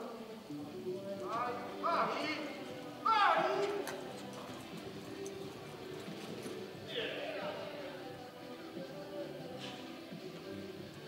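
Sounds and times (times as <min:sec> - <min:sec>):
horse hoofbeats on dirt: 0:01.2 - 0:06.9.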